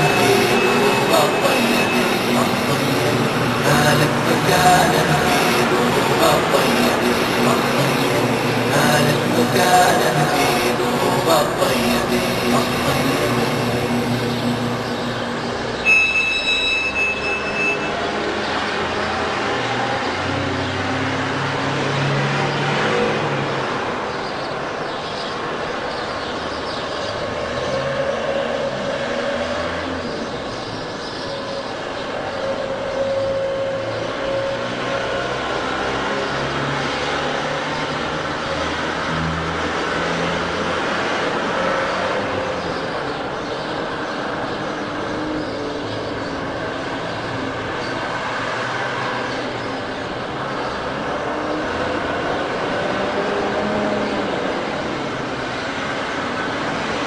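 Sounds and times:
short high-pitched tone: 0.0s - 18.2s
vans driving past: 0.0s - 57.0s.

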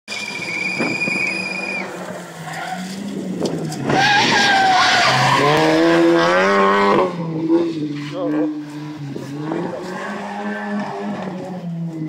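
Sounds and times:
high whistle-like tone: 0.1s - 1.9s
distant rally car engine: 0.1s - 12.0s.

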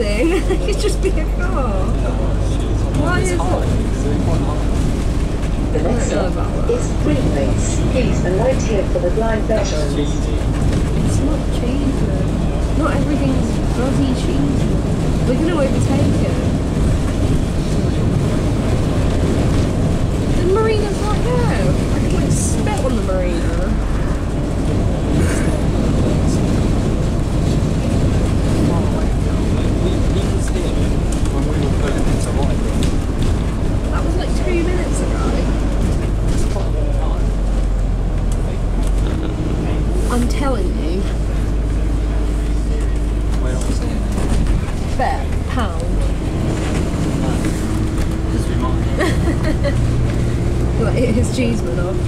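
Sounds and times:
indistinct voices: 0.0s - 19.6s, 20.3s - 52.0s
bus engine rumble: 0.0s - 52.0s
road noise: 0.0s - 52.0s.

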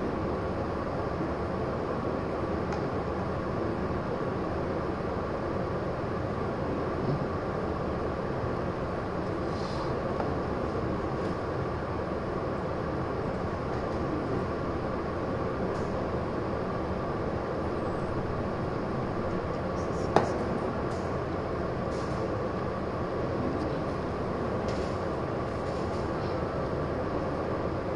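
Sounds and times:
faint hum: 0.0s - 27.9s.

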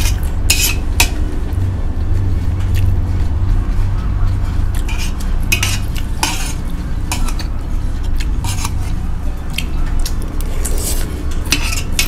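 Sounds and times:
metal spoon scraping brass plate: 0.0s - 1.1s, 4.8s - 7.6s, 8.4s - 9.0s, 10.6s - 12.0s
steady low hum: 0.0s - 12.0s.

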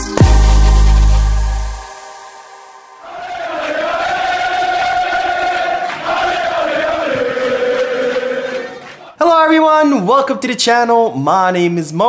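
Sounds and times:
crowd chanting held note: 2.7s - 9.2s.

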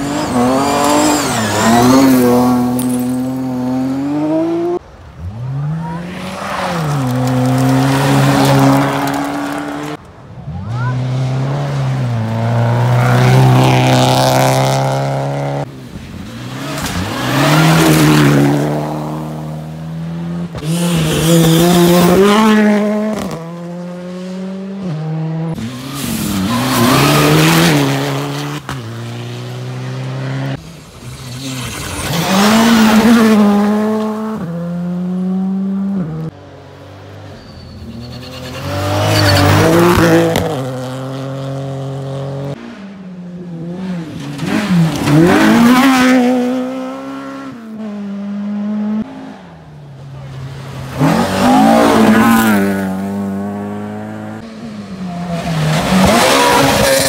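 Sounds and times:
rally car engines revving past: 0.0s - 36.3s, 37.2s - 57.0s.

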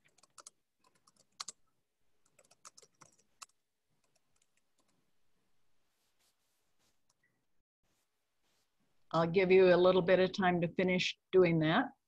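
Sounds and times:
faint keyboard typing: 0.0s - 5.1s.

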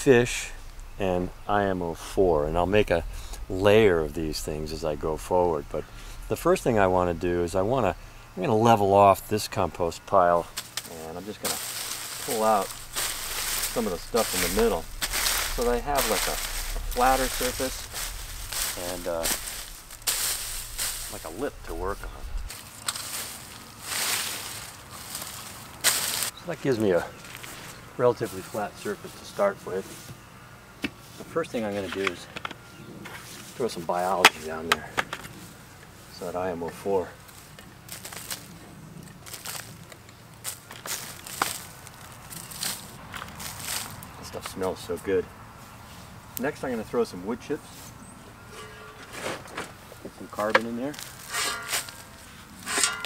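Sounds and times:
garden fork scraping hay: 10.3s - 26.3s, 47.7s - 49.8s, 50.4s - 53.0s.

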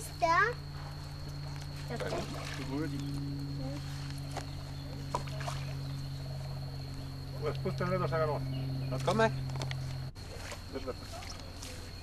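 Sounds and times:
frogs croaking: 0.0s - 12.0s
steady low hum: 0.0s - 12.0s.

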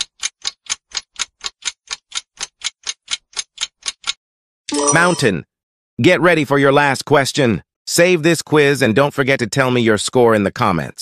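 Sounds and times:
quick clock ticks: 0.0s - 4.2s.

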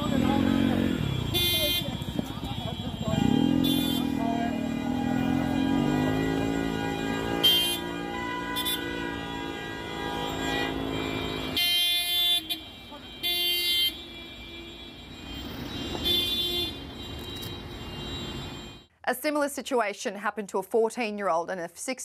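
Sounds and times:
car horns honking: 0.0s - 18.9s.

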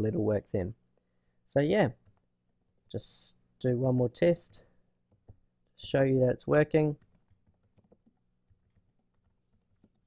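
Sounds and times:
computer keyboard typing: 5.1s - 5.9s, 7.0s - 10.0s.

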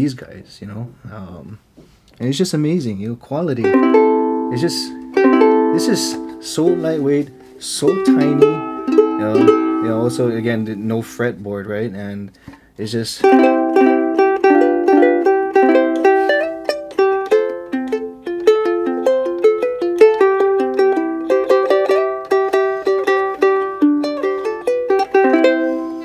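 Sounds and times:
ukulele plucked melody: 3.6s - 11.2s, 13.2s - 26.0s.

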